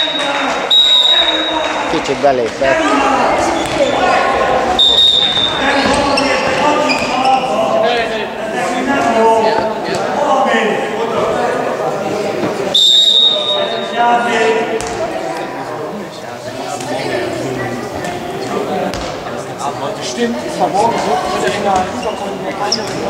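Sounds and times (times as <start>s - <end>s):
referee's whistle: 0.0s - 1.8s, 4.8s - 6.2s, 12.7s - 14.0s
voices shouting: 0.0s - 11.8s
ball bouncing on hall floor: 3.5s - 4.2s, 5.2s - 7.2s, 14.8s - 15.1s, 18.9s - 19.3s.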